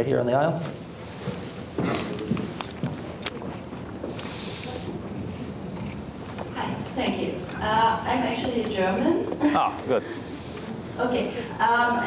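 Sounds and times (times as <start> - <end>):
soft clicks and rustles: 1.1 - 7.6.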